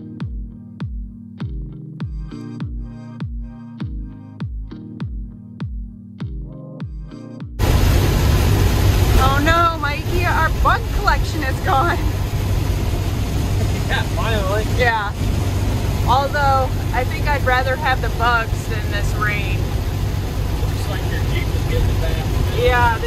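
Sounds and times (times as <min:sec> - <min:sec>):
electronic music with bass beats: 0:00.0 - 0:07.6
road and rain noise: 0:07.6 - 0:23.0.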